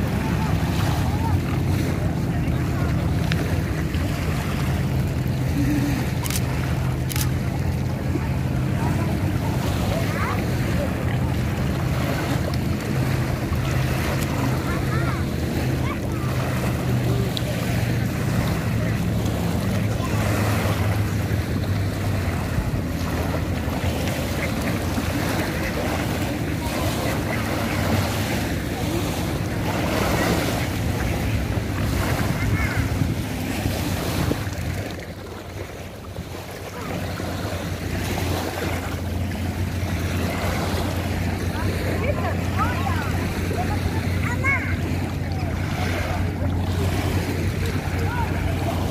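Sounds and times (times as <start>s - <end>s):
small waves lapping on shore: 0.0s - 48.9s
wind buffeting microphone: 0.0s - 48.9s.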